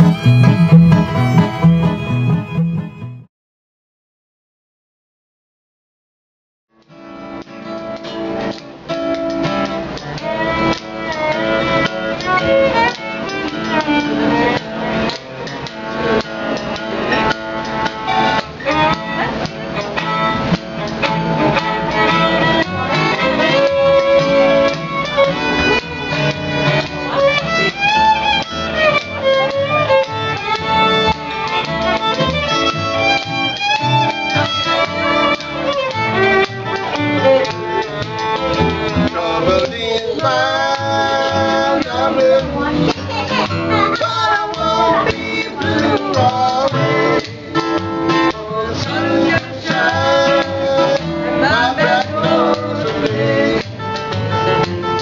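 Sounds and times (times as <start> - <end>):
bass line: 0.0 - 3.3, 18.2 - 55.0
fiddle melody: 0.0 - 3.3, 9.2 - 55.0
strummed acoustic guitar: 0.0 - 3.3, 6.9 - 55.0.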